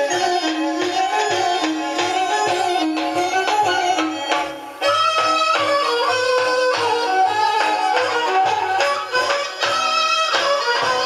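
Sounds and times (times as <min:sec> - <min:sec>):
melodic lead with sliding notes: 0:00.0 - 0:11.0
music from a cassette boombox: 0:00.0 - 0:11.0.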